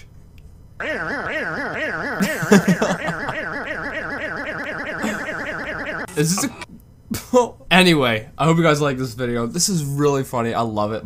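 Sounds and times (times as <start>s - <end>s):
warbling pitched tone: 0.8s - 6.7s.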